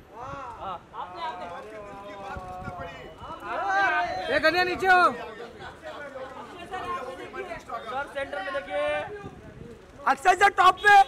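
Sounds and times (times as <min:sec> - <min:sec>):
crowd chatter: 0:00.0 - 0:11.0
loud shout: 0:03.4 - 0:05.1.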